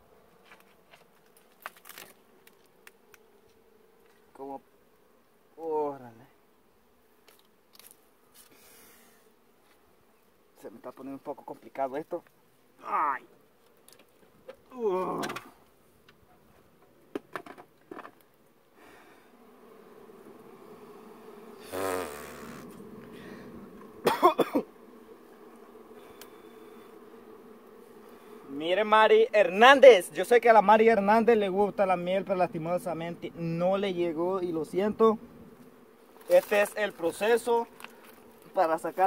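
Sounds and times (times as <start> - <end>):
honeybees buzzing: 0.0 - 39.0
cracks and knocks: 17.1 - 18.2
rustling: 35.4 - 39.0.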